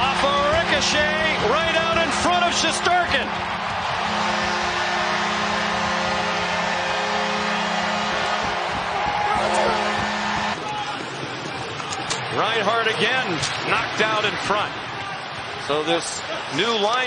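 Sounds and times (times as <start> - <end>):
low goal horn: 0.0 - 10.6
crowd cheering: 0.0 - 17.0.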